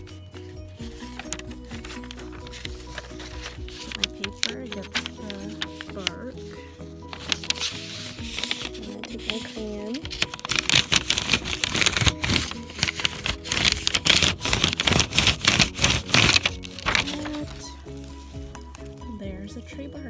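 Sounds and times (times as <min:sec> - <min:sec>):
background music: 0:00.0 - 0:20.0
crayon scraping over paper: 0:00.8 - 0:19.0.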